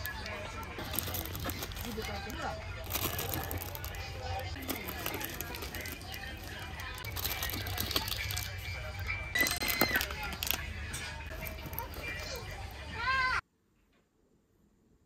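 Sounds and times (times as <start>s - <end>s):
plastic packets rustling: 0.0s - 12.4s
background music: 0.0s - 13.4s.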